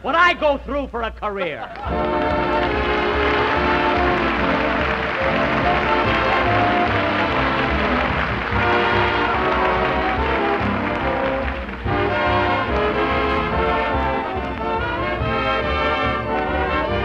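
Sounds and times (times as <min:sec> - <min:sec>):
dance orchestra playing: 0:01.9 - 0:17.0.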